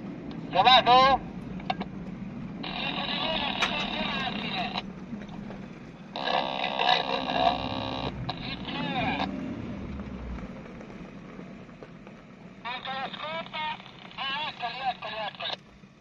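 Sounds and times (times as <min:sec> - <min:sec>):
car engine running: 0:00.0 - 0:16.0
two-way radio voices: 0:00.3 - 0:01.9, 0:02.6 - 0:09.4, 0:12.6 - 0:15.7.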